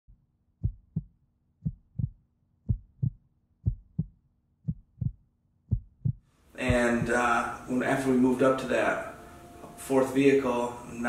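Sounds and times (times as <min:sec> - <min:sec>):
heartbeat thumps: 0:00.6 - 0:07.4
faint steady hum: 0:06.3 - 0:11.0.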